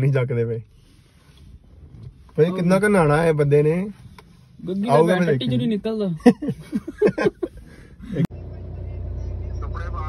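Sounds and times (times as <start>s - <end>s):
car engine hum from inside cabin: 0.0s - 10.0s.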